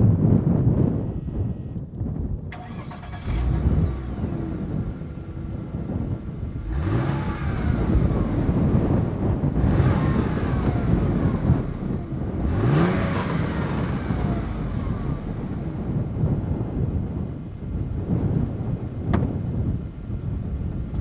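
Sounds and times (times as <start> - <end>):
car engine starting and revving: 0.5 - 19.1.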